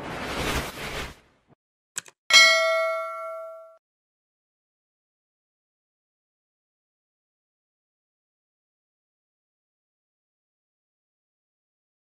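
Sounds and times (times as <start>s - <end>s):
bright notification bell ding: 2.3s - 3.8s.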